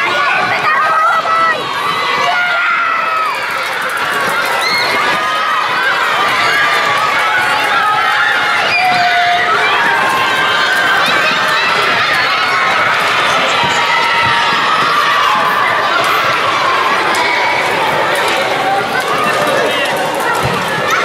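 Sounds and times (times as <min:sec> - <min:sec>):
children shouting and cheering: 0:00.0 - 0:21.0.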